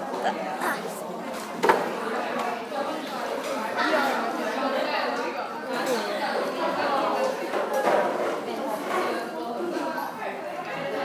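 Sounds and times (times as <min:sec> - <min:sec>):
indistinct chatter of people: 0:00.0 - 0:11.0.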